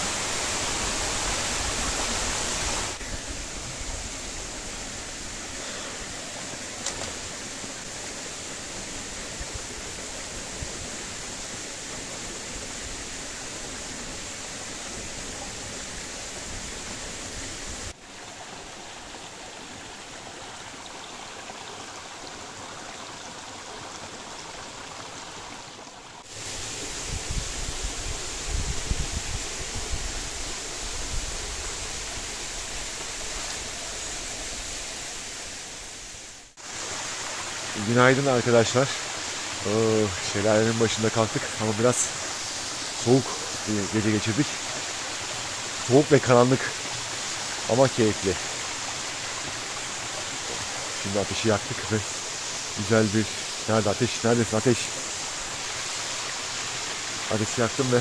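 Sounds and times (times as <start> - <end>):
small waterfall rushing: 0.0 - 58.0.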